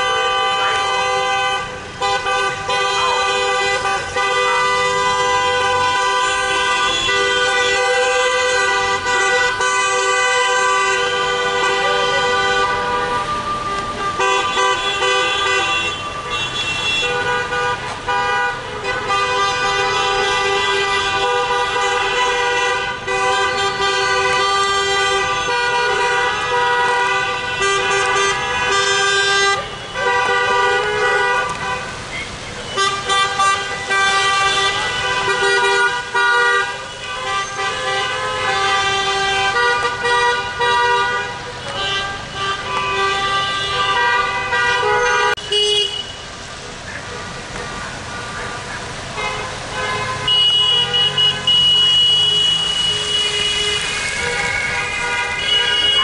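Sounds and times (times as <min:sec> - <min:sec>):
car horns honking: 0:00.0 - 0:46.5, 0:47.1 - 0:56.0.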